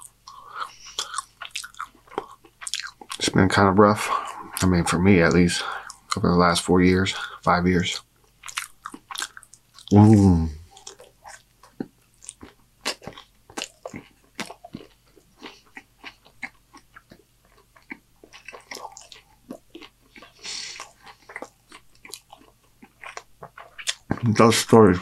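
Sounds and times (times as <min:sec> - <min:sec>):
close chewing with crunches: 0:00.0 - 0:06.3, 0:07.1 - 0:25.0.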